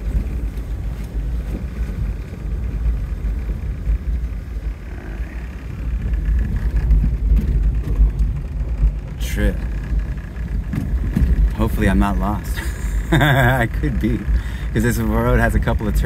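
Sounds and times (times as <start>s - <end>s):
car driving on dirt road: 0.0s - 16.0s.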